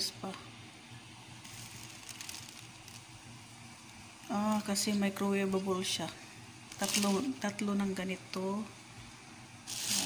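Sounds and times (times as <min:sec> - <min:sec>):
plastic bags crinkling: 0:01.4 - 0:03.1, 0:06.7 - 0:07.4.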